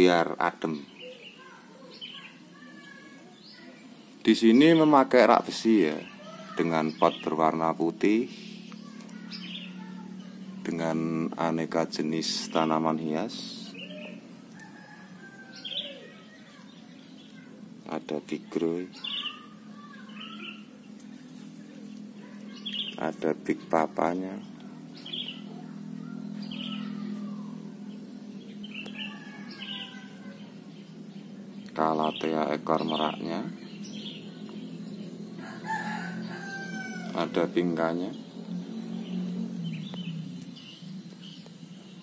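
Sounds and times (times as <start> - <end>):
faint steady hum: 0.0 - 42.0
small bird chirping: 0.3 - 5.0, 5.6 - 11.6, 12.3 - 42.0
rooster crowing: 13.9 - 16.4, 28.5 - 30.8, 35.3 - 37.9.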